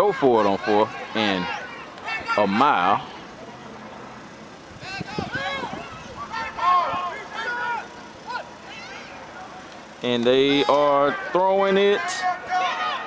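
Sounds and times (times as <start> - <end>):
distant shouting voices: 0.0 - 13.0.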